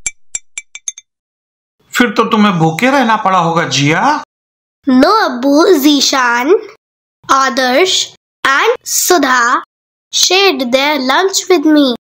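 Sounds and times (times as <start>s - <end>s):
glass marble bouncing: 0.0s - 1.2s.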